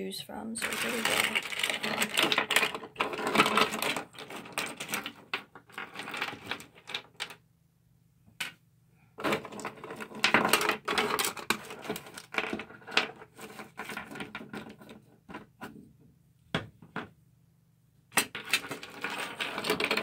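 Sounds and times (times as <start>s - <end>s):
plastic toys clattering: 0.6s - 7.4s, 9.2s - 15.5s, 18.2s - 20.0s.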